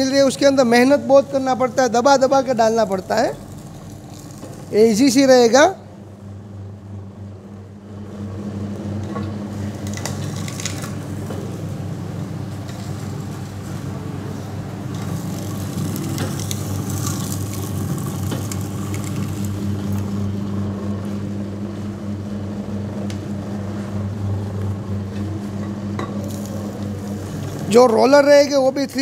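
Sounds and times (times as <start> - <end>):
cane crackling in rollers: 2.0 - 5.4, 9.7 - 11.3, 12.5 - 20.3, 26.2 - 29.0
electric motor humming: 7.9 - 28.4.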